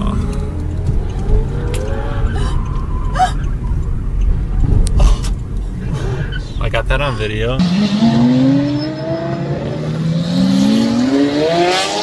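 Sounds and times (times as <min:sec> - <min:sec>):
road and engine rumble in car: 0:00.0 - 0:09.7.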